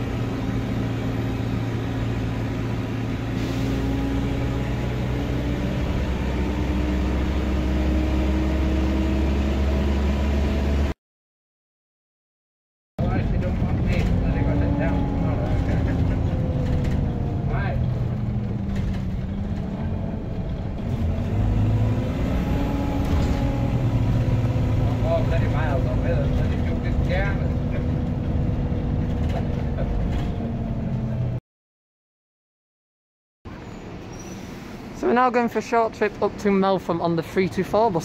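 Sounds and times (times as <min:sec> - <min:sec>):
bus engine rumble: 0:00.0 - 0:11.0, 0:13.0 - 0:31.4, 0:33.5 - 0:38.0.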